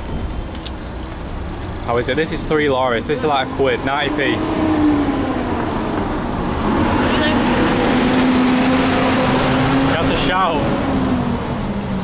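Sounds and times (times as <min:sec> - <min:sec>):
general traffic noise: 0:00.0 - 0:12.0
heavy truck driving past: 0:01.5 - 0:12.0.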